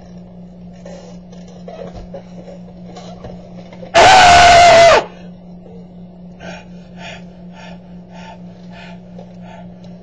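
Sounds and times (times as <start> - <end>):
person screaming loudly: 4.0 - 5.1.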